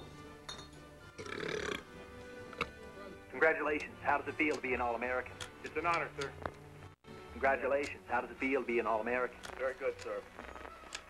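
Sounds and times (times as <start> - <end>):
background music: 0.0 - 11.0
man burping: 1.2 - 1.9.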